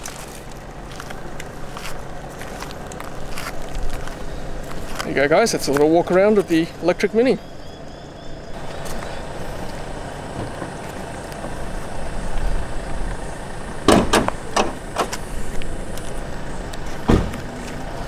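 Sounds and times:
outdoor background noise: 0.0 - 18.0
car door heavy thump: 13.9 - 15.2, 17.0 - 17.4
car door latch clicks: 13.9 - 15.2.

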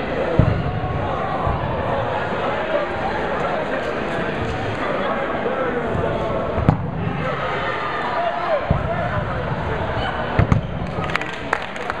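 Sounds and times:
players shouting and chatting: 0.0 - 12.0.

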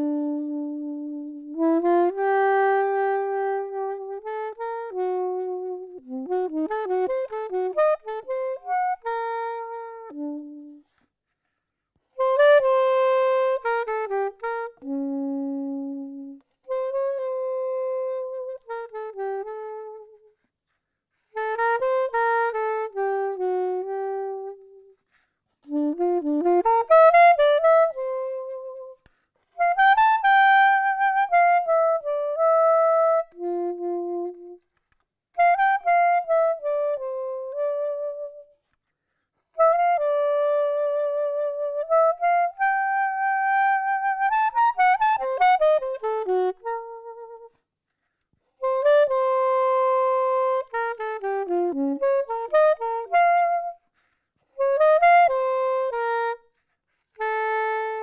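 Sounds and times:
soprano saxophone melody: 0.0 - 58.0.

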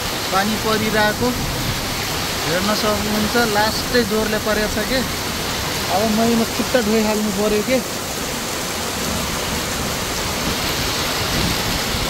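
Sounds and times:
heavy rain on grass: 0.0 - 12.0.

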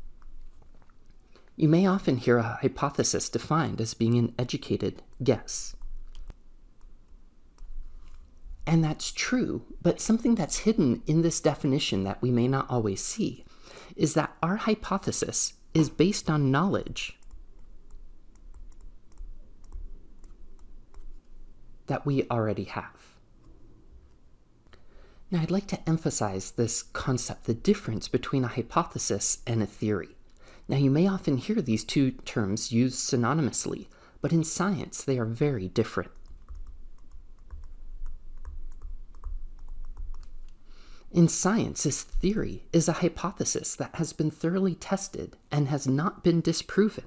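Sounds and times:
stylus tapping on tablet: 36.4 - 40.4.

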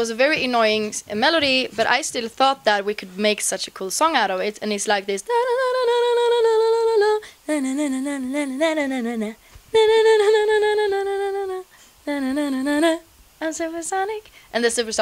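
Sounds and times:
woman singing wordless melody: 4.2 - 15.0.

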